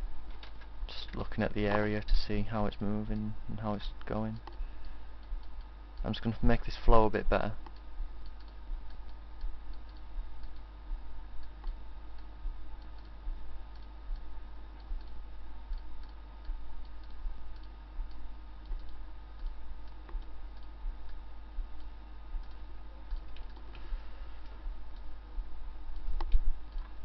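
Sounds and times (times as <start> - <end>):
steady low hum: 0.0 - 27.0
quiet ticking clicks: 0.2 - 27.0.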